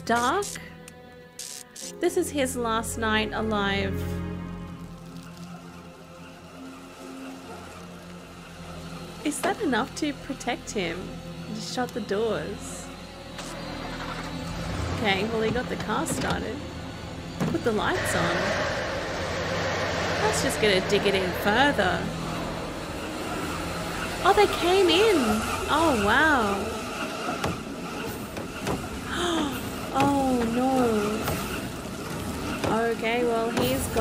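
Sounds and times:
quiet background music: 0.0 - 34.0
car engine running: 5.2 - 34.0.

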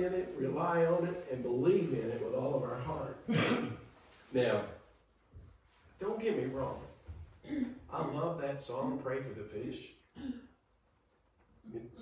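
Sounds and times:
voice: 0.0 - 3.7, 4.3 - 4.8, 6.0 - 9.9, 11.7 - 12.0
man clearing his throat: 3.3 - 3.9.

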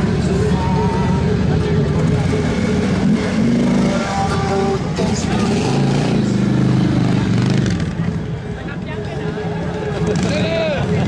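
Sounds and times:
motorcycle engines riding past: 0.0 - 11.0
people's voices: 0.0 - 11.0.

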